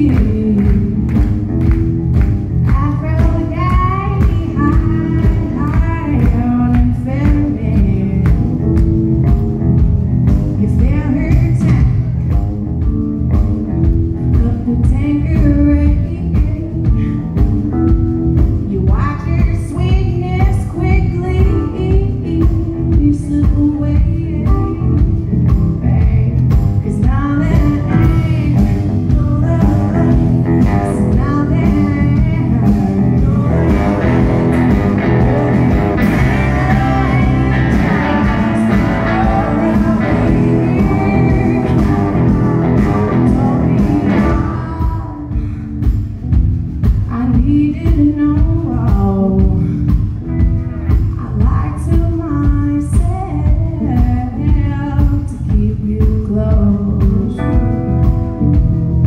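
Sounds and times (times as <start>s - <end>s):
woman singing: 0.0s - 1.8s, 2.6s - 9.5s, 10.5s - 12.4s, 14.2s - 17.6s, 18.4s - 46.0s, 46.9s - 58.6s
drums: 0.0s - 59.0s
electric guitar: 0.0s - 59.0s.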